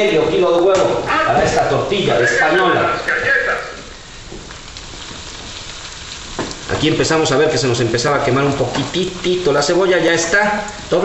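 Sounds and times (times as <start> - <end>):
man's voice: 0.0 - 3.9
onion frying in oil: 0.0 - 11.0.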